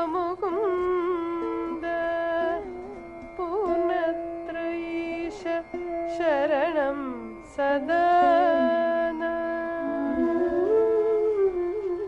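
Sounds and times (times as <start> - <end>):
woman singing a hymn: 3.4 - 10.5.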